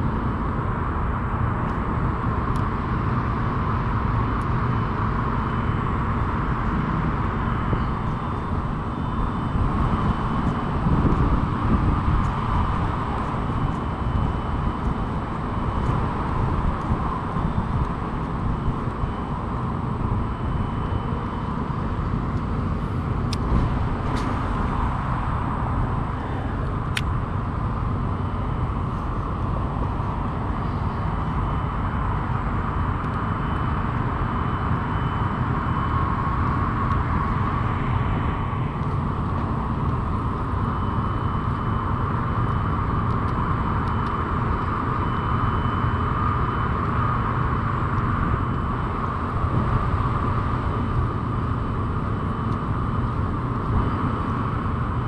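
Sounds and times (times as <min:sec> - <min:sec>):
wind buffeting microphone: 0:00.0 - 0:34.8
distant road traffic: 0:00.0 - 0:55.0.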